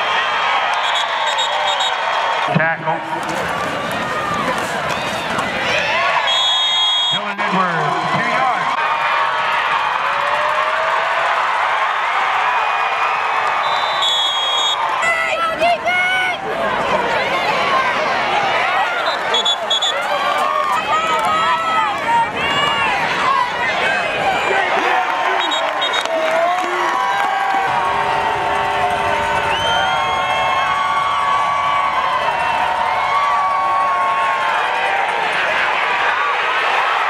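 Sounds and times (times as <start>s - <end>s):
crowd yelling and cheering: 0.0s - 37.0s
high whistle blasts: 0.7s - 2.0s, 6.2s - 7.2s, 13.6s - 14.9s, 18.9s - 20.0s, 25.3s - 26.1s.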